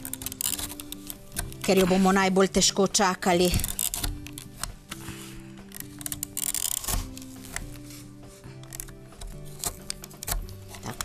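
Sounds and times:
paper punch clicking through paper: 0.0 - 2.0, 3.4 - 7.8, 8.6 - 11.0
background music with held notes: 0.0 - 11.0.

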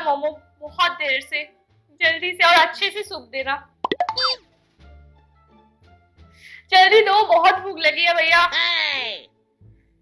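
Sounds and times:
soft background music: 0.0 - 10.0
comic falling glide effect: 3.9 - 4.4.

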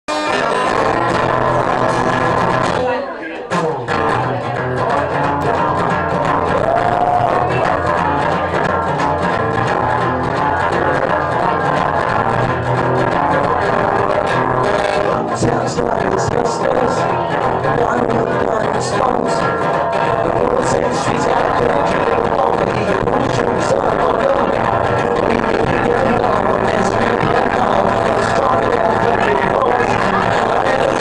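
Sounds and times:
two acoustic guitars playing: 0.1 - 31.0.

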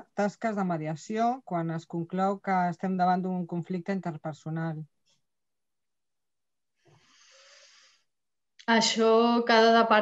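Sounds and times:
faint breath into microphone: 6.8 - 8.1.

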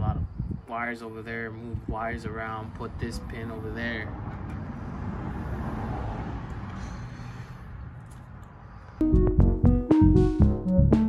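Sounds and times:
road traffic rumbling hiss: 2.3 - 9.0.

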